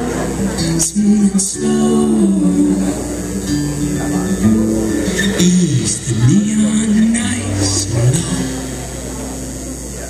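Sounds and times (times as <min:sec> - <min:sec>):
person singing: 0:00.0 - 0:08.9
live folk rock band: 0:00.0 - 0:10.0
strummed guitar: 0:00.0 - 0:10.0.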